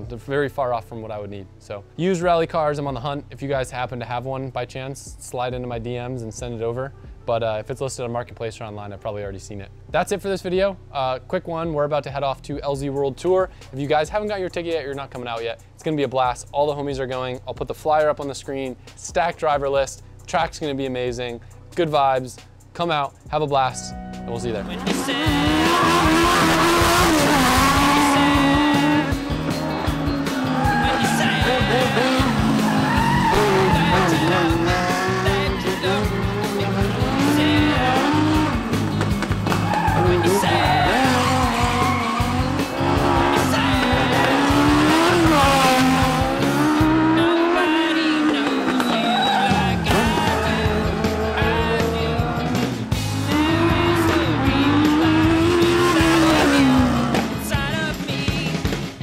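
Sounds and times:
background music: 0.0s - 59.0s
race car engine revving: 24.5s - 57.7s.

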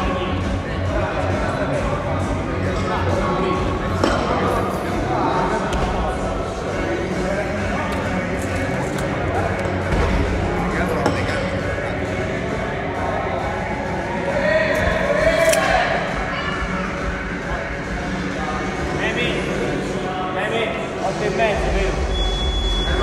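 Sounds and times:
indistinct voices chattering: 0.0s - 23.0s.

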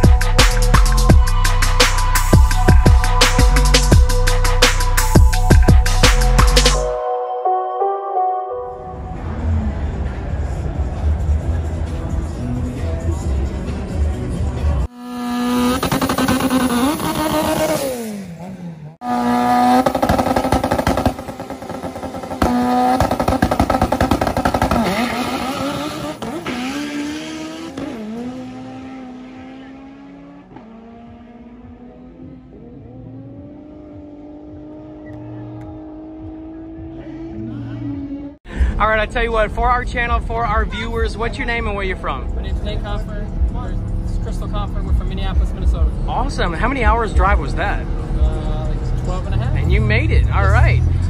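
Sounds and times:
turbocharged car engine revving: 9.2s - 38.4s, 39.0s - 51.0s
car accelerating through gears: 15.0s - 38.4s.

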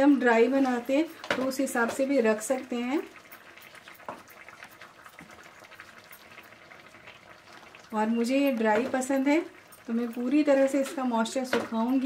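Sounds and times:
thick food bubbling in a pan: 0.0s - 12.0s
wooden spatula stirring: 0.4s - 12.0s.

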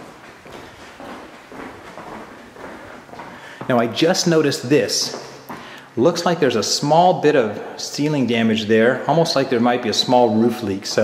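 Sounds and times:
soft footsteps on wood floor: 0.0s - 6.2s, 10.0s - 11.0s.

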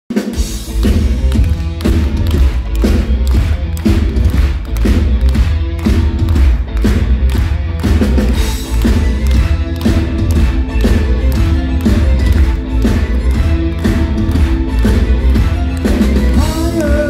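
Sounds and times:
rock band playing: 0.1s - 17.0s.

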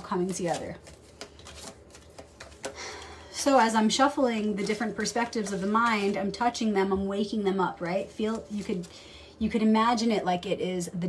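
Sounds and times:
cards being shuffled: 0.0s - 6.6s.

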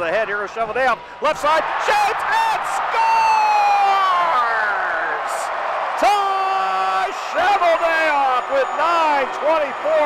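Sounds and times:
announcer shouting: 6.0s - 10.0s.

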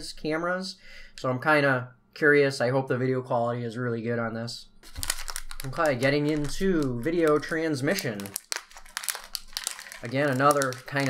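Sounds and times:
plastic bag crinkling: 4.8s - 11.0s.

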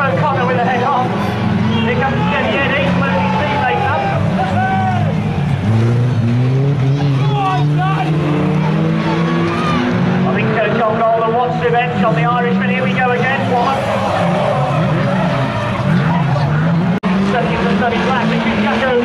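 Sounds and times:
racing car engines revving: 0.0s - 19.0s
voices: 0.0s - 19.0s.

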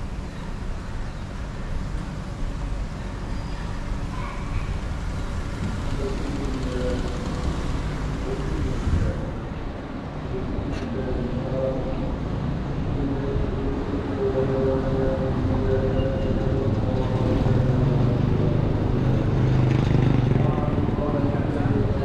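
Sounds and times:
vehicle engine running: 4.7s - 9.5s.

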